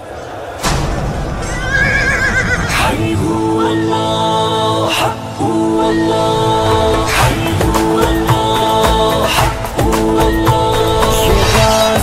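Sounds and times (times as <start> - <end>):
sudden loud hit: 0.6 - 2.4
horse whinnying: 1.5 - 2.9.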